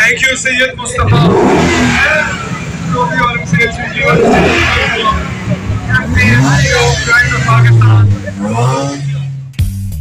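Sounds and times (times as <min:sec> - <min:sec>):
voices: 0:00.0 - 0:09.5
car engine revving: 0:00.0 - 0:09.6.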